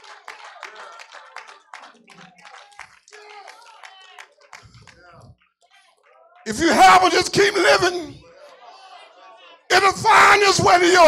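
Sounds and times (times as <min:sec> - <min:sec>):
hand clapping: 0:00.0 - 0:05.4.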